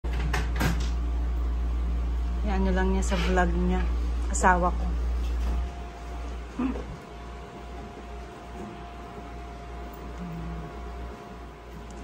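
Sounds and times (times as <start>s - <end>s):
steady low hum: 0.1s - 12.0s.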